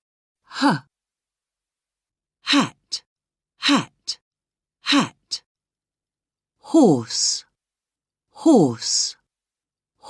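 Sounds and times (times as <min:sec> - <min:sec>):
person saying huh: 0:00.5 - 0:00.9, 0:02.5 - 0:03.0, 0:03.6 - 0:04.2, 0:04.8 - 0:05.4, 0:06.6 - 0:07.5.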